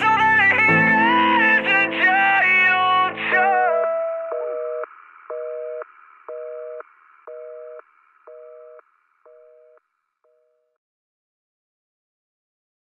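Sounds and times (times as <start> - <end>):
telephone busy signal beeps: 4.3 - 9.8.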